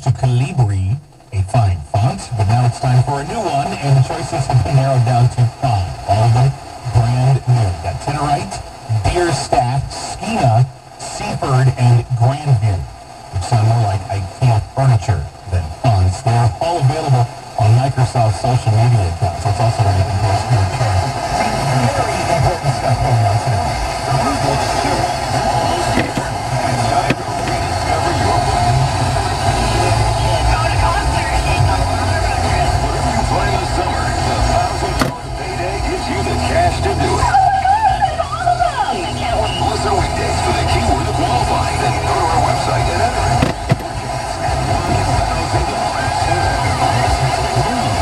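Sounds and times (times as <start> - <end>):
car rumble: 0.0 - 48.0
garbled radio voice: 0.0 - 48.0
radio static: 0.0 - 48.0.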